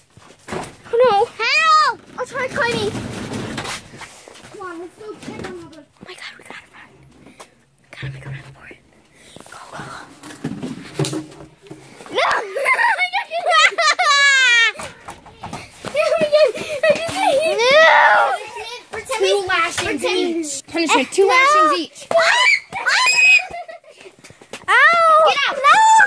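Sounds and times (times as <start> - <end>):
children crying out: 16.3 - 18.6, 21.6 - 23.8, 24.7 - 26.0.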